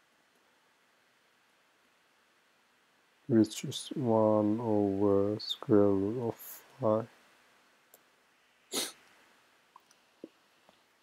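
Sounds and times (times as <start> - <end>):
person taking sharp breath: 8.7 - 9.0.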